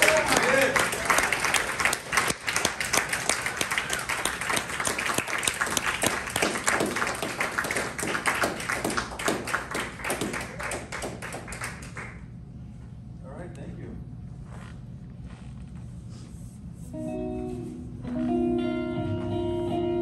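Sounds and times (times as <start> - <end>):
audience clapping: 0.0 - 12.4.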